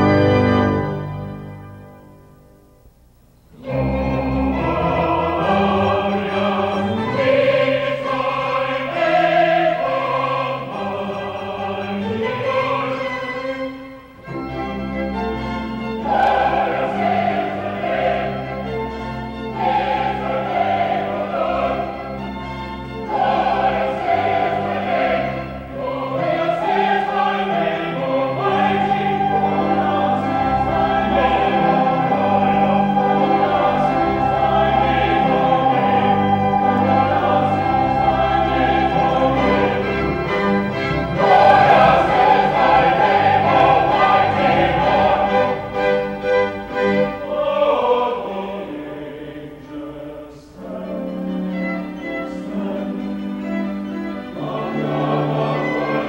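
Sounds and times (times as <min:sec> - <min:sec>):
choir singing sacred music: 0:00.0 - 0:02.3, 0:03.5 - 0:56.0
string ensemble: 0:00.0 - 0:02.4, 0:03.5 - 0:56.0.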